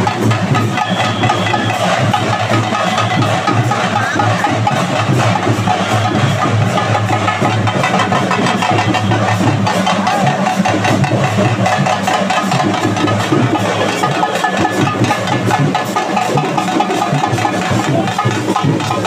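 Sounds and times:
procession music with drums: 0.0s - 19.0s.

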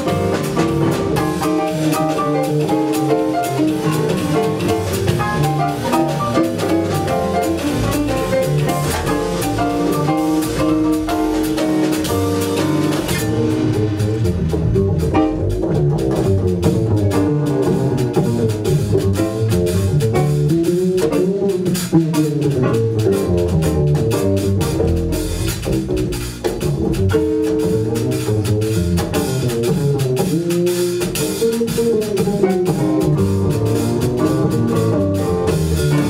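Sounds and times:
drum kit with cymbals: 0.0s - 36.0s
walking double bass: 0.0s - 36.0s.

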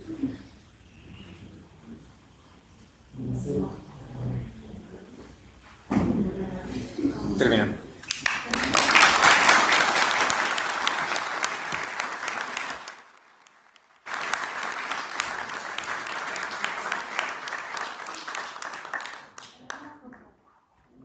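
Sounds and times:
audience applause: 8.0s - 19.8s.

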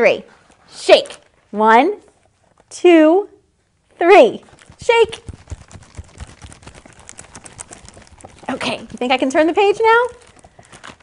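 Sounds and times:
book pages flapping: 4.4s - 11.0s.

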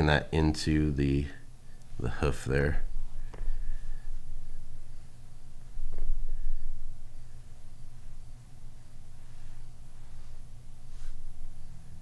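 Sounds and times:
low rumbling room tone: 0.0s - 12.0s.

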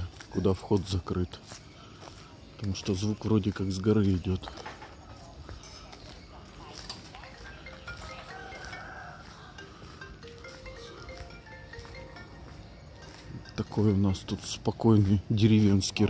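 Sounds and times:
distant bells ringing: 5.5s - 16.0s.

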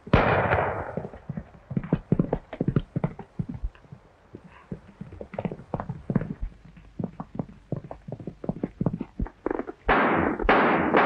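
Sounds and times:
galloping horse hoofbeats: 0.0s - 11.0s
handgun shot: 0.1s - 1.0s, 9.9s - 11.0s.

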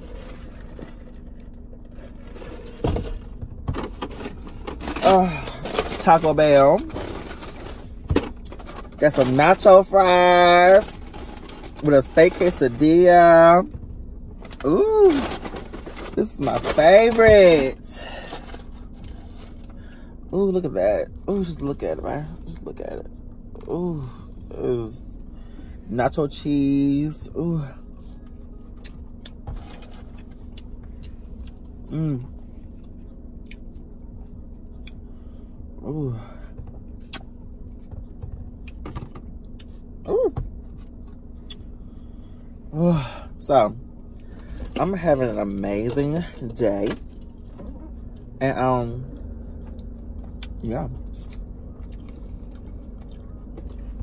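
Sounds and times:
steady low hum: 0.0s - 54.0s
paper bag rustling: 3.9s - 9.9s, 14.6s - 19.6s
person chewing food: 30.1s - 31.8s, 32.6s - 33.9s, 51.2s - 54.0s.

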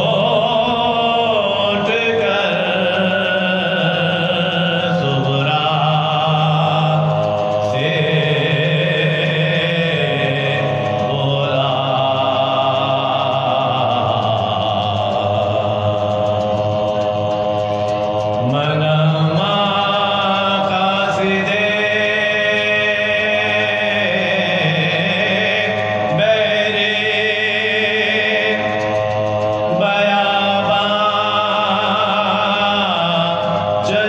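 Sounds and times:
mourning elegy chanted: 0.0s - 34.0s.

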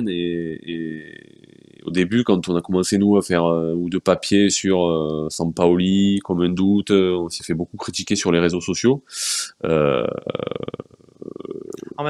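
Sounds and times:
man's drawn-out hesitation: 0.0s - 1.2s, 1.8s - 12.0s
quiet voice murmurs: 0.0s - 1.2s, 1.9s - 8.2s, 8.8s - 12.0s.

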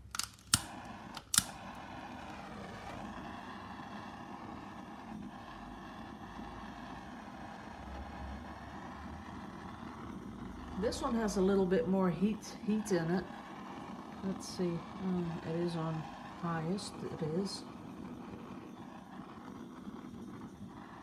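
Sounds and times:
gas torch igniter click: 0.0s - 6.7s
gas torch flame hissing: 0.0s - 21.0s.

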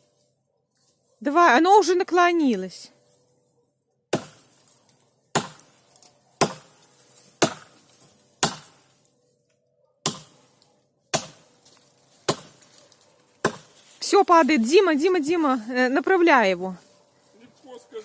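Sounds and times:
axe chopping tree trunk: 4.1s - 4.6s, 5.3s - 5.8s, 6.4s - 8.9s, 10.0s - 10.5s, 11.1s - 12.7s, 13.4s - 13.8s.

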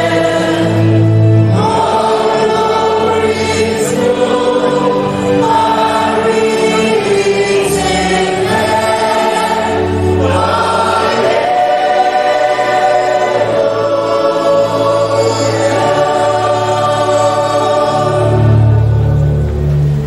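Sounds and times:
choir singing a slow hymn: 0.0s - 20.0s.

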